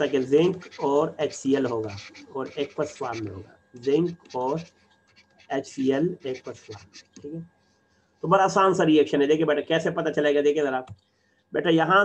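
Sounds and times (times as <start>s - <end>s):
man speaking: 0.0s - 4.7s, 5.5s - 7.5s, 8.2s - 10.9s, 11.6s - 12.0s.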